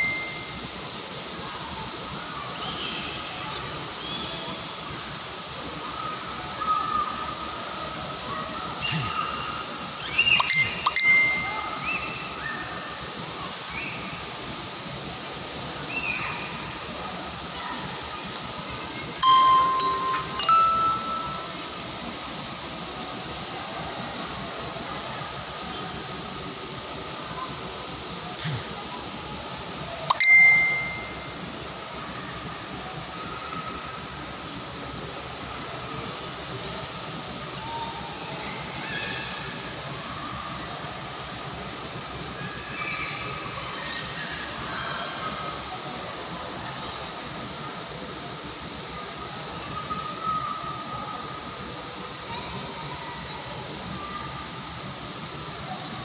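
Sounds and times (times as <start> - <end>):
outdoor background noise: 0.0 - 56.0
short high-pitched sounds: 10.4 - 11.5, 19.2 - 21.7, 30.1 - 31.3.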